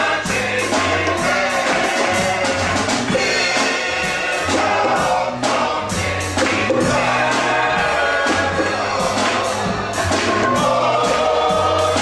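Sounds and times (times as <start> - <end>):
steady bass line: 0.0 - 12.0
voices singing together: 0.0 - 12.0.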